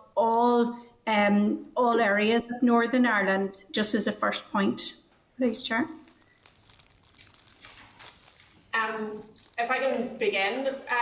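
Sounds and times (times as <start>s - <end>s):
soft rustles: 5.9s - 10.7s.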